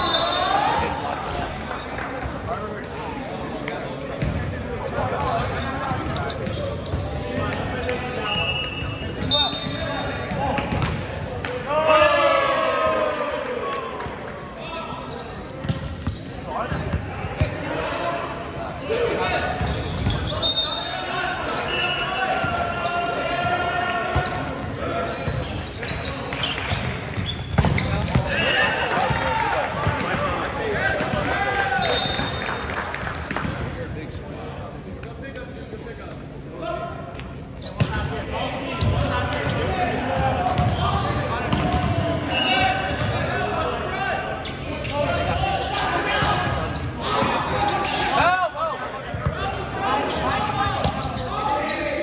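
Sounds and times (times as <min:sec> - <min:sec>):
sneakers squeaking: 0:04.1 - 0:12.1, 0:14.9 - 0:23.1, 0:24.1 - 0:32.8, 0:36.4 - 0:43.4, 0:44.0 - 0:52.0.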